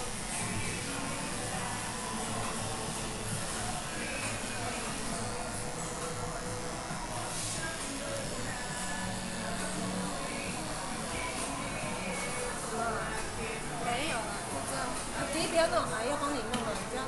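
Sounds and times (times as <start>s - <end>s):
electric hair clippers humming: 0.0s - 14.2s.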